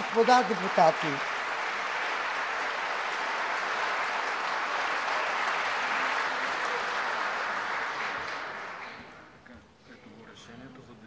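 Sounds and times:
hall applause: 0:00.0 - 0:09.4.

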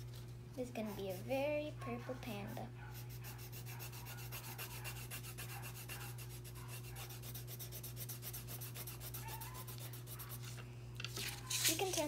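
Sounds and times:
pencil scratching on paper: 0:00.7 - 0:01.5, 0:02.2 - 0:10.6.

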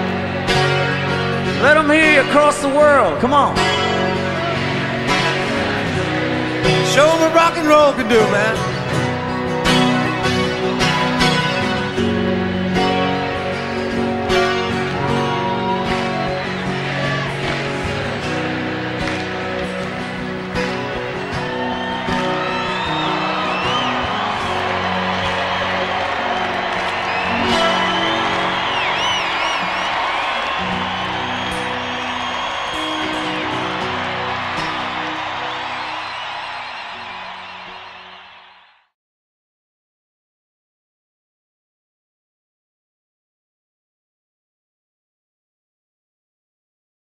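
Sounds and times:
rock band with strummed guitars: 0:00.0 - 0:38.7
crowd cheering and whistling: 0:00.0 - 0:39.0.

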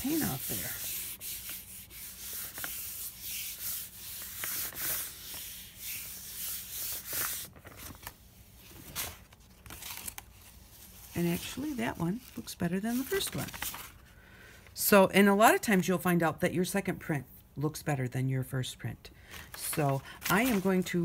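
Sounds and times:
hand rubbing paper: 0:00.0 - 0:08.3.

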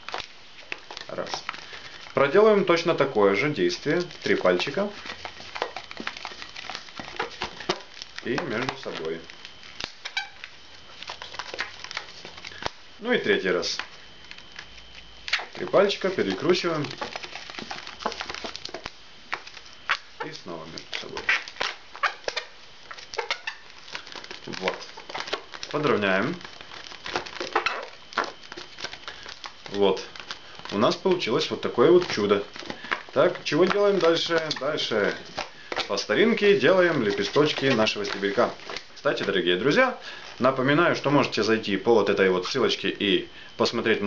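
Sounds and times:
latex balloon creaking as twisted: 0:00.0 - 0:41.4.

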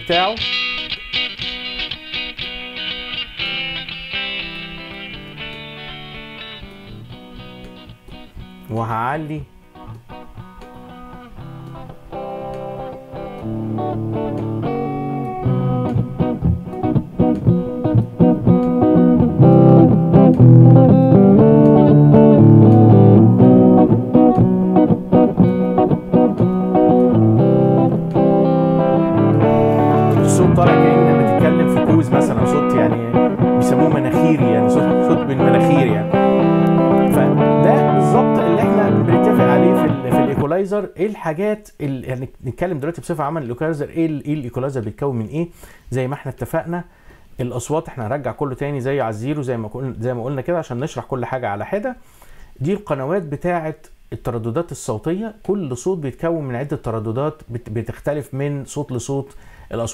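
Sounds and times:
recorded guitar track: 0:00.0 - 0:59.9.

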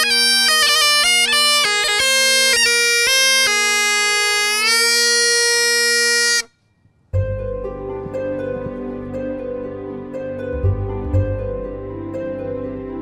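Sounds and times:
bagpipes playing: 0:00.0 - 0:06.5
soft plucked harp-like music: 0:07.2 - 0:13.0.

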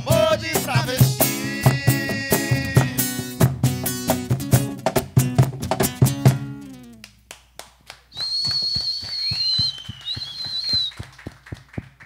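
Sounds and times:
acoustic guitar strum: 0:00.0 - 0:07.0
person whistling shrilly: 0:08.1 - 0:11.2.

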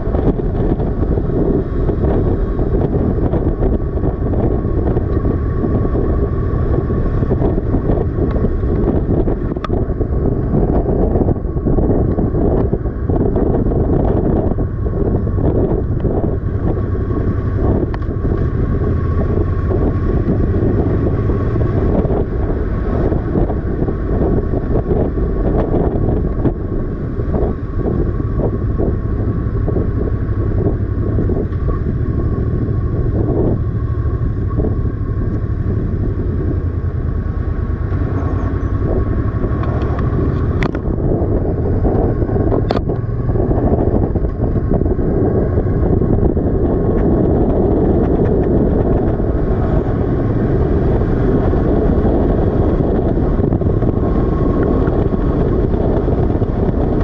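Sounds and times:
motorcycle engine running: 0:00.0 - 0:57.0
wind rushing over microphone: 0:00.0 - 0:57.0.

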